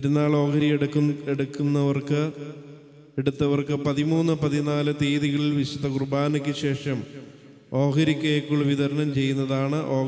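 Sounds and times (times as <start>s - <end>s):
man speaking into microphone: 0.0s - 10.0s.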